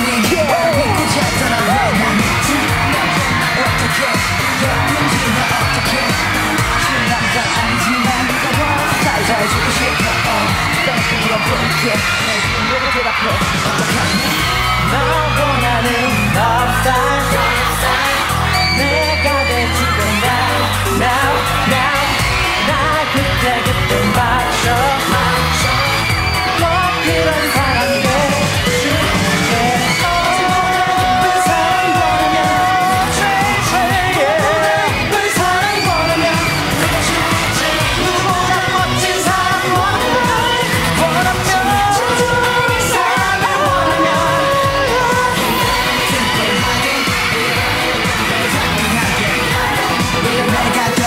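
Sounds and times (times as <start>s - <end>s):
male group singing: 0.0s - 12.4s, 14.8s - 51.0s
band accompaniment: 0.0s - 51.0s
pop backing track with drum beat: 0.0s - 51.0s.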